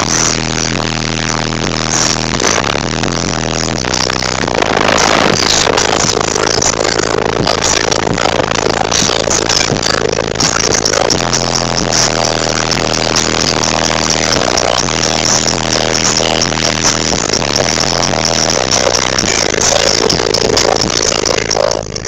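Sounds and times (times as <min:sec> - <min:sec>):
loud bass-heavy car music: 0:00.0 - 0:22.0.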